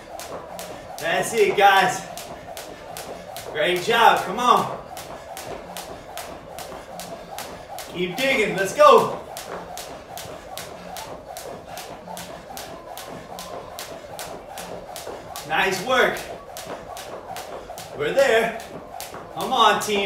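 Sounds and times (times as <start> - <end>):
jump rope slapping floor mats: 0.0 - 20.0.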